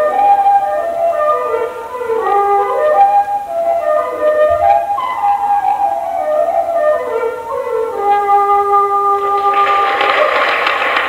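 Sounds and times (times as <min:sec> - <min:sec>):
flute playing: 0:00.0 - 0:11.0
audience applause: 0:09.4 - 0:11.0.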